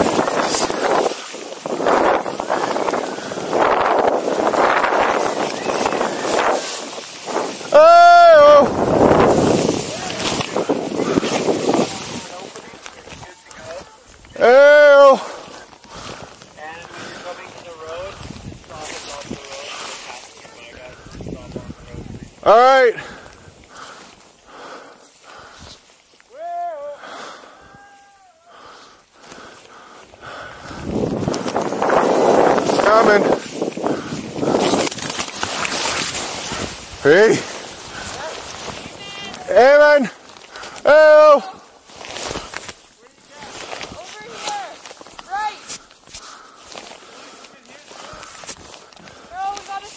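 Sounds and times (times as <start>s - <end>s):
wind on microphone: 0.0s - 12.6s, 18.1s - 19.4s, 20.9s - 22.4s, 30.2s - 35.1s
snowboard spraying snow hiss: 0.0s - 13.0s, 30.6s - 40.0s
snow crunches: 0.0s - 28.0s, 28.6s - 49.9s
person whooping: 7.6s - 8.8s, 26.3s - 28.5s.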